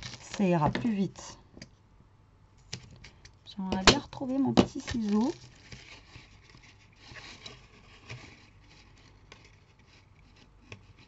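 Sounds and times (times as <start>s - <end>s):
card stock rustling: 0.0s - 1.0s, 3.8s - 11.0s.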